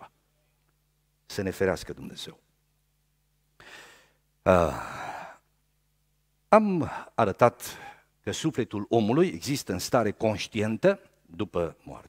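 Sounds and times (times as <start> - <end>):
man sighing: 3.6 - 5.4.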